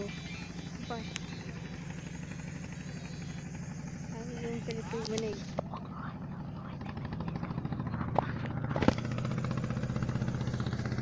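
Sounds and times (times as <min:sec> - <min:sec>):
small boat engine running: 0:00.0 - 0:11.0.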